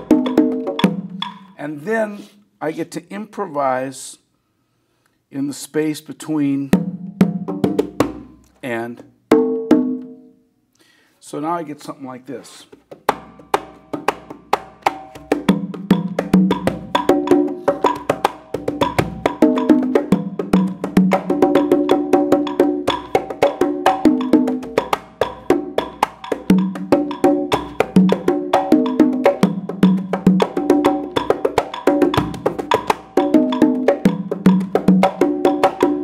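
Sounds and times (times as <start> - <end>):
conga drums played by hand: 0.0 - 1.6, 6.7 - 8.4, 9.3 - 10.2, 12.7 - 36.0.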